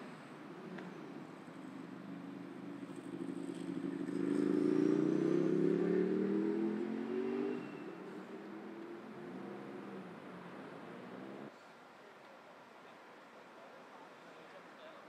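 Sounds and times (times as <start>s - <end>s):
traffic hiss: 0.0s - 5.5s
vehicle engine accelerating past: 0.8s - 11.5s.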